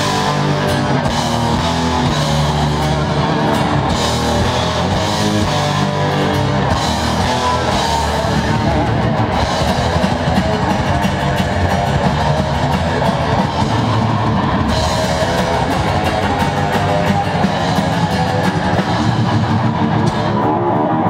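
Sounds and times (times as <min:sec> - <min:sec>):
bass guitar: 0:00.0 - 0:21.0
drum kit: 0:00.0 - 0:21.0
electric guitar: 0:00.0 - 0:21.0.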